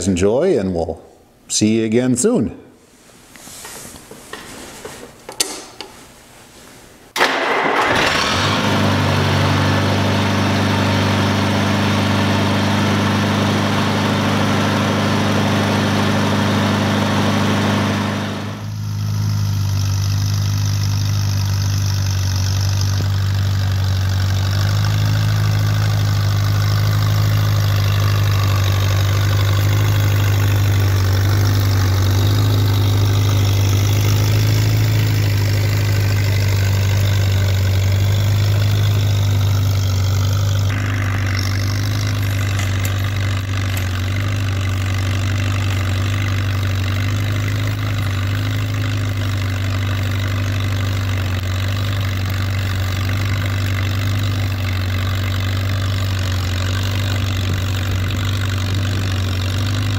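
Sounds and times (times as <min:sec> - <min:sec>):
tractor engine running: 0:07.2 - 0:59.9.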